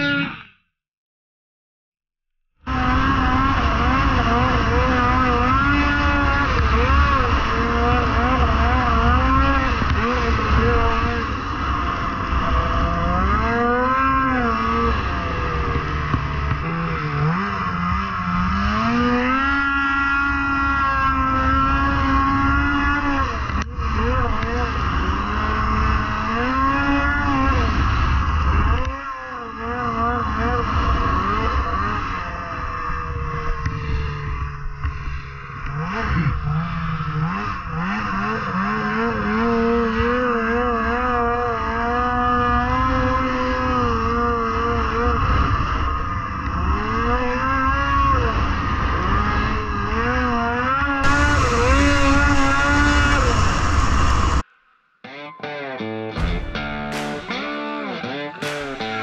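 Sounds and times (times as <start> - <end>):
snowmobile engine revving: 2.7 - 54.4, 56.2 - 59.0
sharp knock: 56.2 - 57.7, 58.4 - 59.0.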